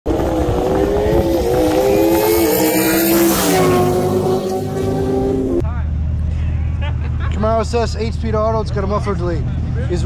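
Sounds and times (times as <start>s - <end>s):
car engine at high revs: 0.1s - 5.6s.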